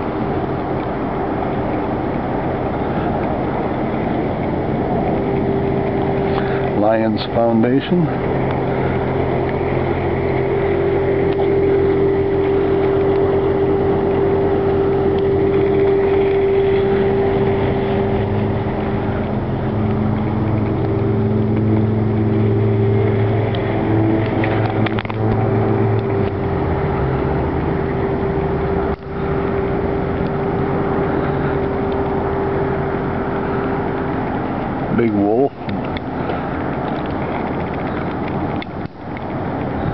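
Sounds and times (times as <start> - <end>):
motor idling hum: 0.0 - 39.9.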